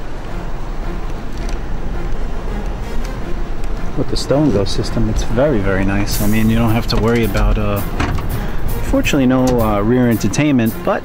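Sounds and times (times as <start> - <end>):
low hum inside van cabin: 0.0 - 11.0.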